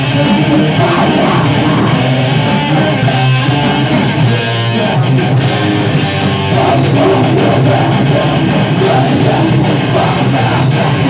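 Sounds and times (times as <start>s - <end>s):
metal band playing live: 0.0s - 11.0s.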